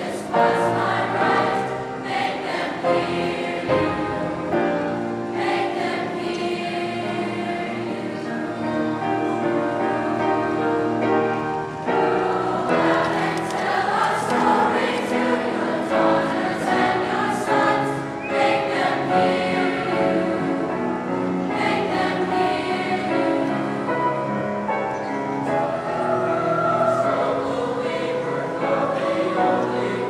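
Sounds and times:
children's choir singing: 0.0s - 30.0s
piano accompaniment: 0.0s - 30.0s.

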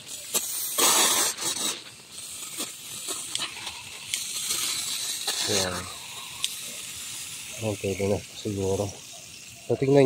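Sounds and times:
hose spraying water jet: 0.0s - 10.0s.

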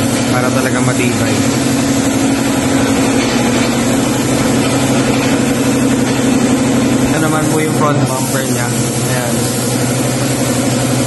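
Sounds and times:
air compressor humming: 0.0s - 11.0s
spray gun hissing: 0.0s - 11.0s.

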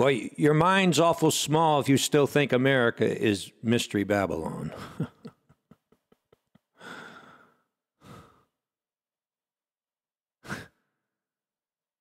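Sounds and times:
person exhaling breathily: 6.8s - 8.6s, 10.4s - 11.0s.

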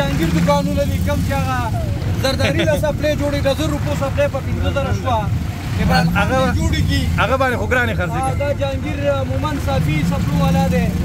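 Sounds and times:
auto rickshaw engine rumbling: 0.0s - 11.0s
voices talking: 0.0s - 11.0s.

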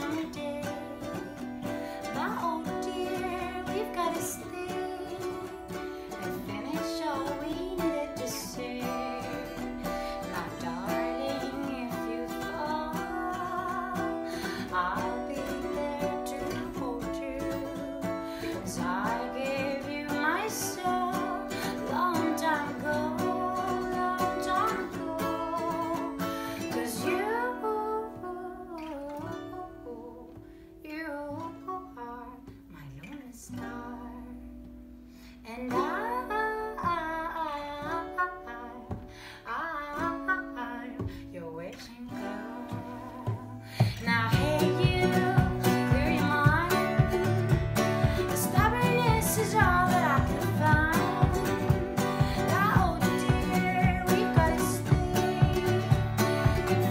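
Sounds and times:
acoustic guitar: 0.0s - 56.9s
ukulele: 0.0s - 56.9s
woman singing: 0.0s - 56.9s.

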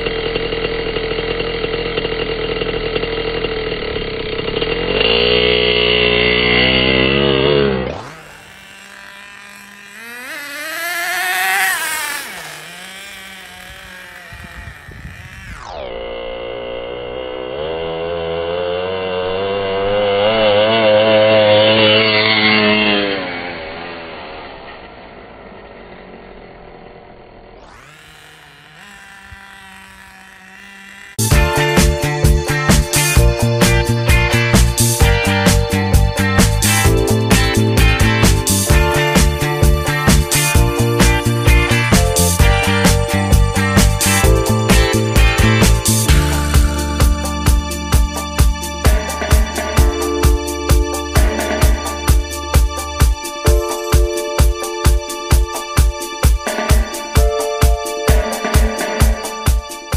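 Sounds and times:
rc truck nitro engine revving: 0.0s - 54.0s, 54.6s - 57.5s.

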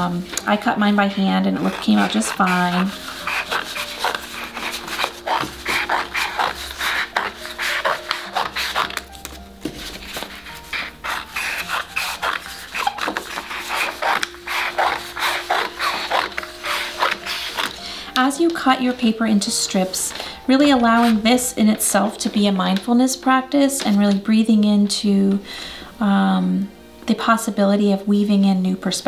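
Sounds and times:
soft background music: 0.0s - 29.0s
scissors snipping paper: 0.1s - 19.0s.

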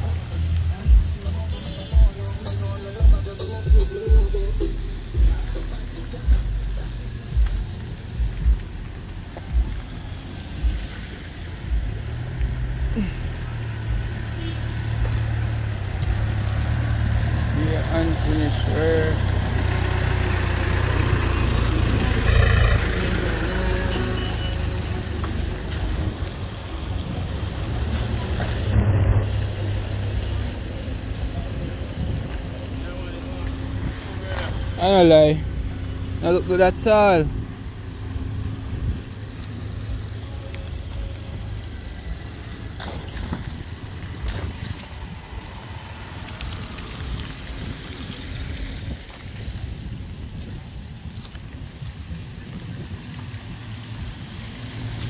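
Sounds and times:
cars driving past on wet road: 0.0s - 55.0s
voices: 17.3s - 25.9s, 27.6s - 37.4s.

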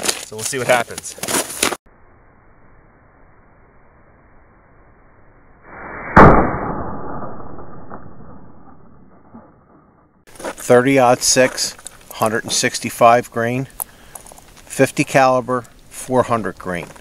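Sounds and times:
muffled gunshot: 6.1s - 9.5s.

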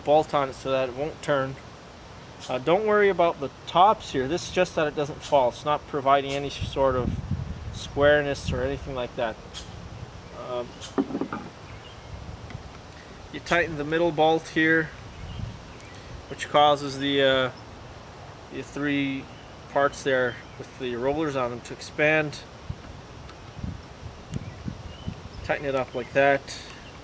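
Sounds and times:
outdoor background noise: 0.0s - 27.0s
sharp knock: 10.9s - 11.5s.

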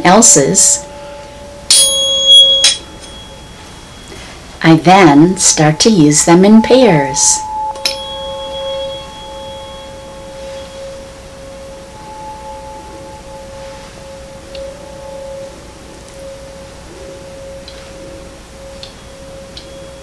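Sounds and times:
tuning forks ringing: 0.0s - 20.0s.

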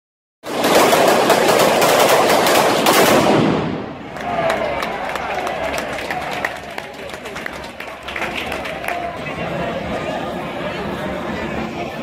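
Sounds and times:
firecrackers crackling and popping: 0.5s - 4.0s.

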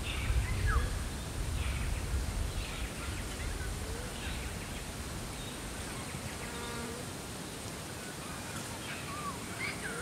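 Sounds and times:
insect buzzing close by: 6.3s - 7.1s.

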